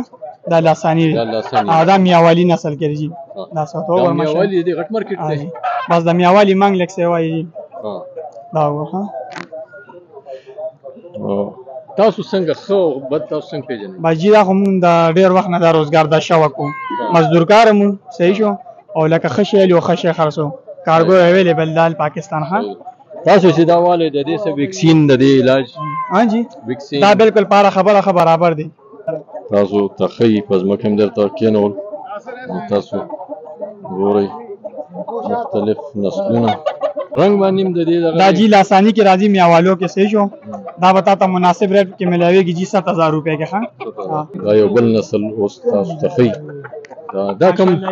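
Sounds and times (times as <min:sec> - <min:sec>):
men's voices: 0:00.0 - 0:47.9
rooster clucking: 0:00.0 - 0:47.9.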